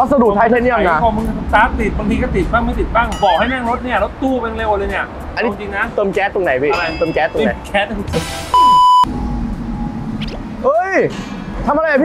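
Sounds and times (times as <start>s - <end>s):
low background rumble: 0.0s - 5.4s, 7.5s - 12.0s.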